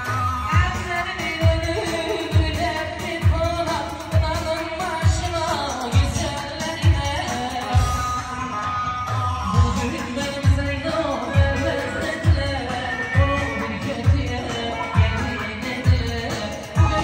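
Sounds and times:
man singing into a microphone: 0:00.0 - 0:08.1, 0:09.6 - 0:17.0
amplified saz: 0:00.0 - 0:17.0
keyboard: 0:00.0 - 0:17.0.

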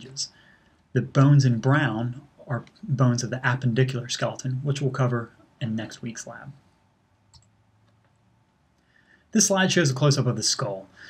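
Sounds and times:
faint low hum: 0:00.0 - 0:11.0
faint click: 0:07.3 - 0:08.9.

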